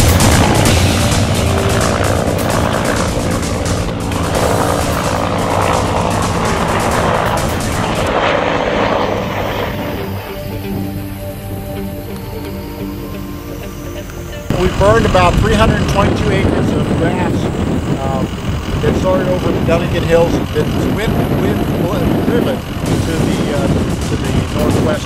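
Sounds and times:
music: 0:00.0 - 0:25.0.

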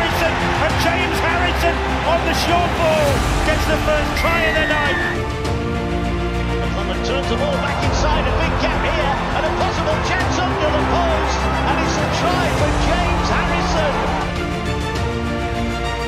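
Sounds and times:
stadium crowd cheering: 0:00.0 - 0:05.6, 0:06.8 - 0:15.7
background music: 0:00.0 - 0:16.0.

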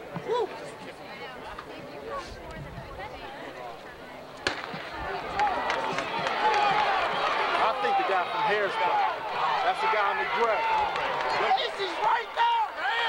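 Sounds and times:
spectators cheering and shouting: 0:04.5 - 0:13.0.

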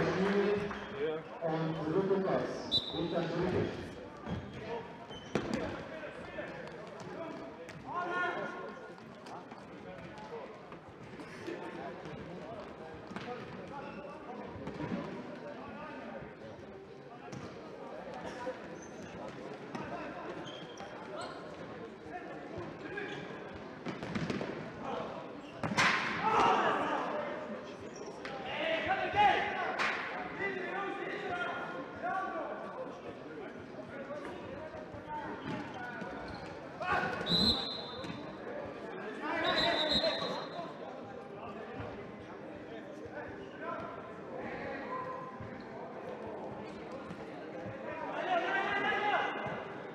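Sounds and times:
players and spectators shouting: 0:26.2 - 0:27.2.

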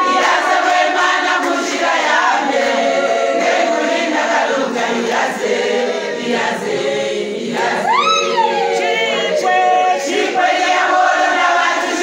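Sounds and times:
women singing gospel together: 0:00.0 - 0:12.0
woman's high sliding call: 0:07.8 - 0:10.0.

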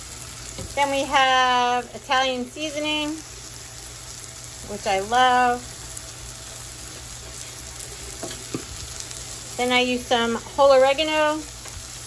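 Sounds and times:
meat sizzling in a frying pan: 0:00.0 - 0:12.0.

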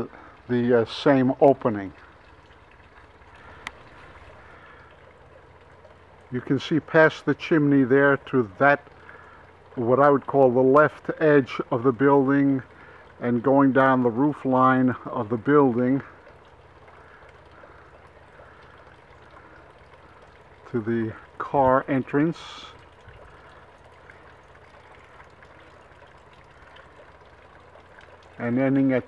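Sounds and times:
faint outdoor background noise: 0:00.0 - 0:29.0.

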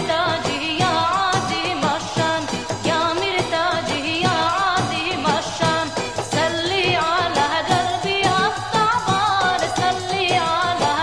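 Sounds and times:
person singing ornamented melody: 0:00.0 - 0:06.0
instrumental backing: 0:00.0 - 0:11.0
percussion beat: 0:00.0 - 0:11.0.

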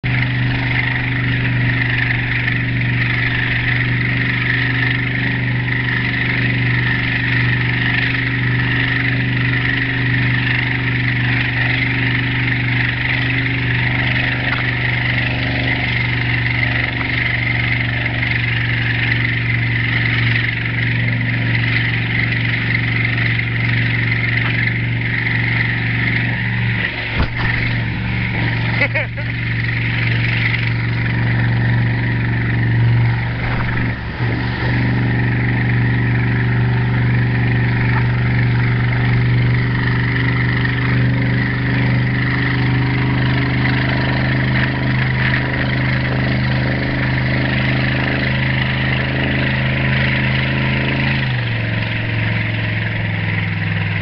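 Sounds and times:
motorboat engine running: 0:00.0 - 0:54.0
sharp knocks: 0:26.9 - 0:28.6, 0:33.3 - 0:35.0
wind and water rushing: 0:32.2 - 0:39.3.

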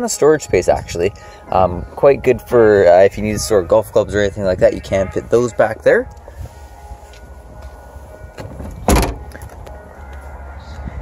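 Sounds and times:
car liftgate shutting thump: 0:08.4 - 0:09.6.

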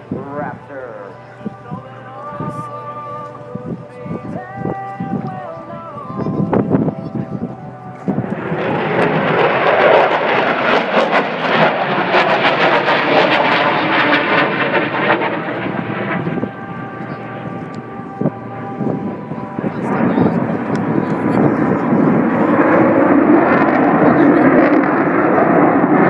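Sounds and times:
fighter jet passing overhead: 0:00.0 - 0:26.0.

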